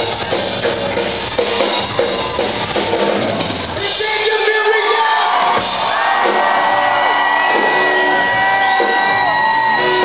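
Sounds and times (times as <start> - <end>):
live rock band playing: 0.0 - 10.0
crowd whooping and shouting: 1.2 - 10.0.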